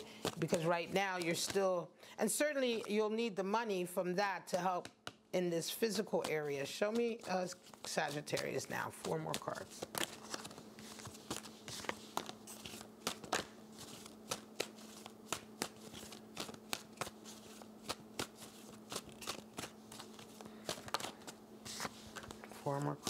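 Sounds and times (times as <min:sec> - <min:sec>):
cards being shuffled: 0:00.0 - 0:01.8, 0:05.8 - 0:23.0
faint steady hum: 0:00.0 - 0:23.0.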